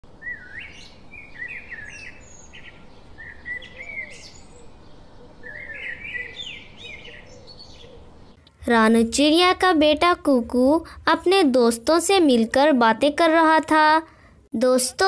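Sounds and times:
bird chirping and warbling: 0:00.2 - 0:08.4.

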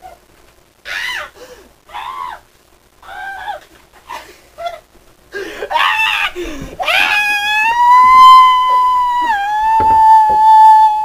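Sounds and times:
person making high wordless cries: 0:05.4 - 0:11.0.

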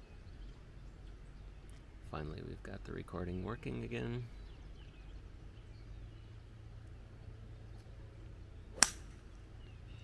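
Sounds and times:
golf club striking ball: 0:08.7 - 0:09.4.

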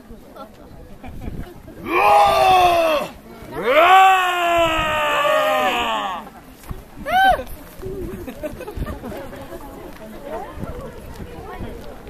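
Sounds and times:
faint crowd murmur: 0:00.0 - 0:12.0
performer roaring: 0:01.8 - 0:06.2.

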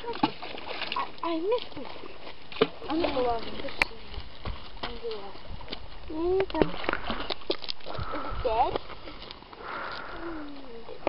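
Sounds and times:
breathy rush: 0:07.9 - 0:10.7.

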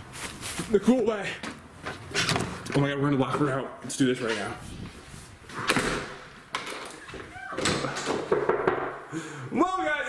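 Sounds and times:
door slamming shut: 0:05.6 - 0:06.8, 0:07.5 - 0:08.9.

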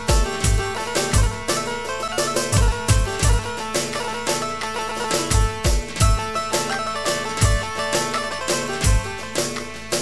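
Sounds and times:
deep drum thumps: 0:00.0 - 0:01.7, 0:02.5 - 0:04.1, 0:05.3 - 0:06.4, 0:07.4 - 0:07.8, 0:08.8 - 0:09.3
folk dance band music: 0:00.0 - 0:10.0.

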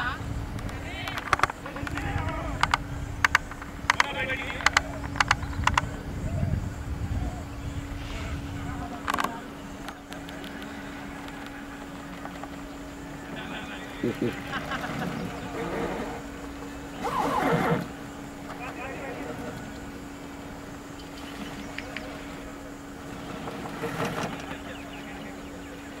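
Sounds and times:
steady low hum: 0:00.0 - 0:26.0
players shouting: 0:08.7 - 0:20.9.

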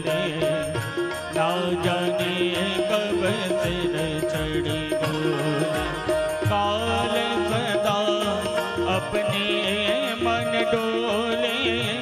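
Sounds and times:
devotional music: 0:00.0 - 0:12.0
person singing: 0:00.0 - 0:12.0.

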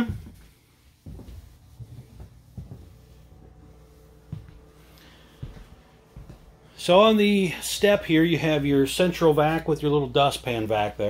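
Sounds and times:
footsteps on floor: 0:00.0 - 0:08.8
faint steady hum: 0:00.0 - 0:11.0.

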